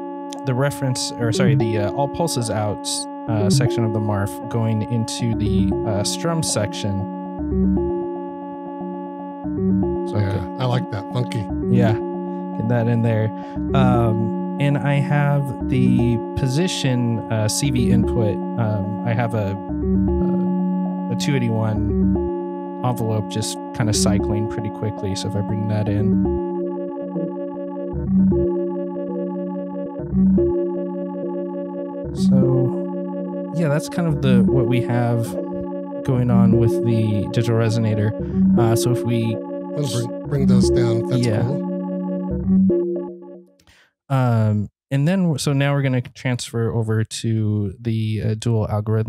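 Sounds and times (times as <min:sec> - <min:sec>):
resonant synthesizer notes: 0:00.0 - 0:43.7.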